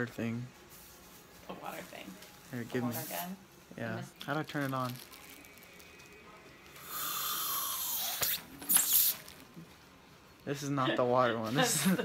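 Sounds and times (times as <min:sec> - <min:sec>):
air syringe hissing: 0:06.7 - 0:09.6.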